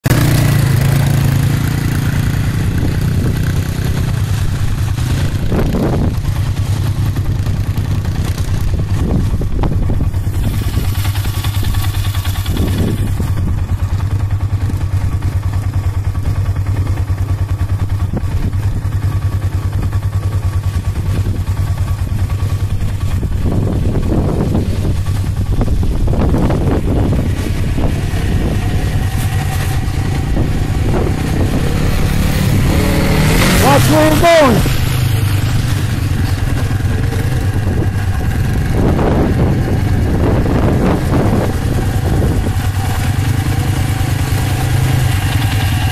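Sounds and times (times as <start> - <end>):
atv engine rumbling: 0.0 - 45.9.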